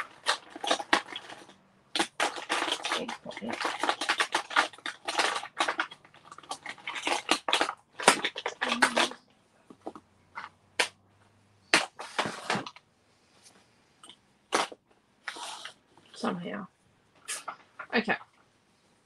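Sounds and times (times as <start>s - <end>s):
plastic pads clattering: 0.0s - 11.0s, 11.7s - 12.8s, 14.5s - 15.8s.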